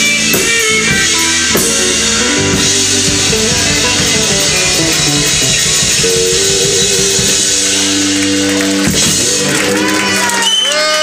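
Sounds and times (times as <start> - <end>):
held guitar chord: 0.0 - 8.9
live rock band playing: 0.0 - 11.0.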